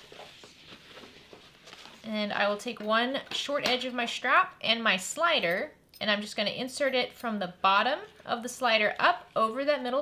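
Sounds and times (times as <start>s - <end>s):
strap rustling on tabletop: 0.0s - 2.4s.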